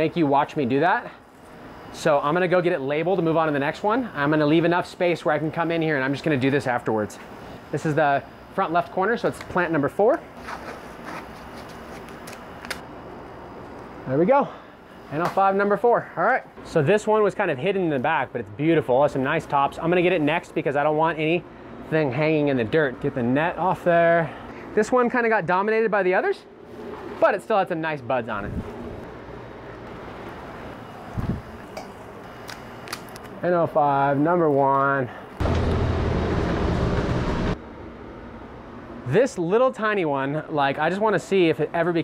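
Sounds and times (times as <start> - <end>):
steady background hiss: 0.0 - 35.4, 37.5 - 42.0
tape crackling: 10.4 - 12.8, 32.2 - 33.4
tape tearing snap: 11.6 - 12.8, 32.4 - 33.4.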